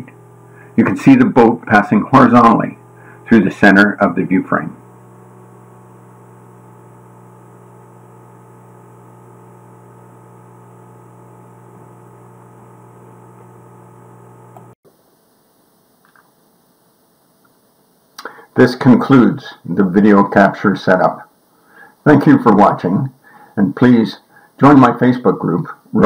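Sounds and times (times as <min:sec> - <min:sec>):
steady electrical hum: 0:00.0 - 0:26.0.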